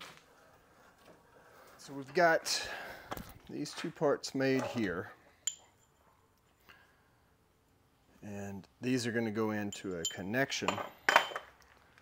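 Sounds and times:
metal tubes clinking: 9.7s - 11.6s.

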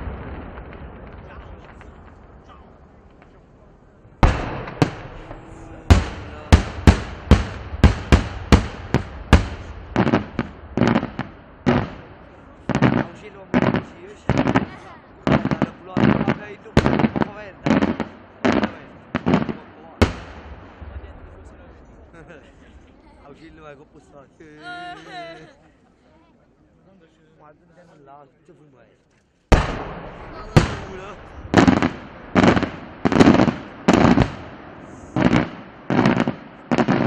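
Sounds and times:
firework shells bursting: 4.2s - 14.7s, 29.2s - 37.0s.

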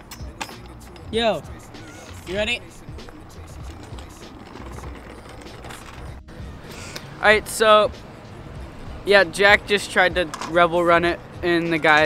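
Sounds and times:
scooter wheels rolling over brick: 0.2s - 6.2s.

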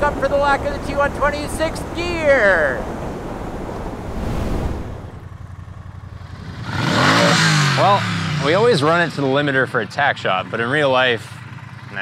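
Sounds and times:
motorcycle passing at speed: 3.1s - 9.6s.

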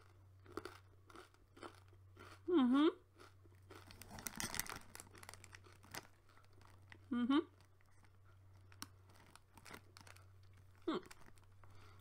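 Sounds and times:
packet crinkling: 3.7s - 12.0s.

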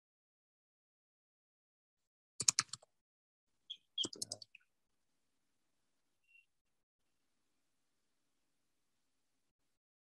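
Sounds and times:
computer keyboard typing: 2.4s - 2.9s, 4.0s - 4.5s.

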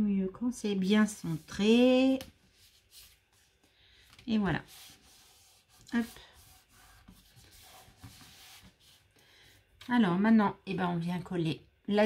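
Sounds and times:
hands rubbing card flat: 1.1s - 9.1s.

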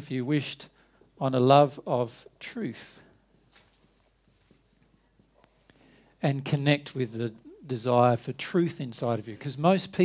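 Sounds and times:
marker writing on whiteboard: 3.1s - 5.6s.

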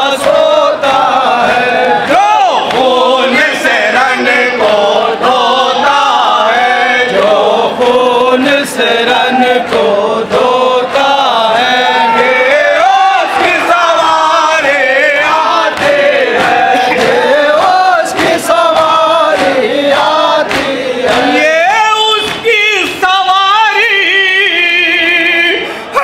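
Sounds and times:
man reciting: 0.0s - 15.7s, 16.7s - 26.0s
men chanting in unison: 0.0s - 26.0s.

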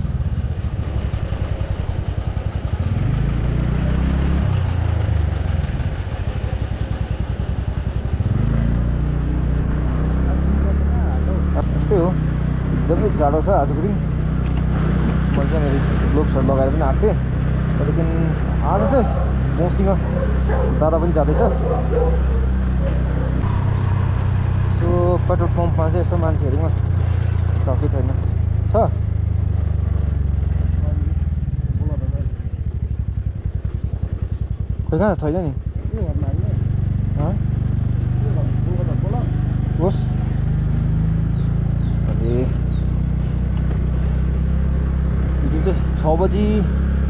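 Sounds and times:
motor scooter engine running: 0.0s - 47.0s
person talking: 15.0s - 20.0s.

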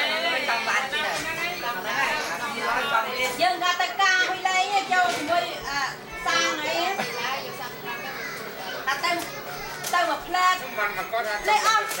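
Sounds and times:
adults and children chattering: 0.0s - 12.0s.

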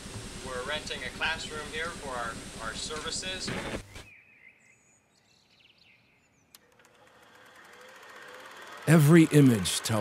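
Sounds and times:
faint hiss: 0.0s - 4.0s
faint bird chirps: 3.8s - 6.6s.

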